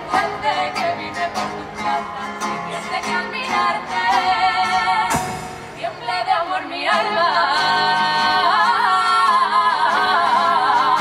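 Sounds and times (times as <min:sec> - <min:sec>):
acoustic guitar: 0:00.0 - 0:11.0
women's chorus singing: 0:00.0 - 0:11.0.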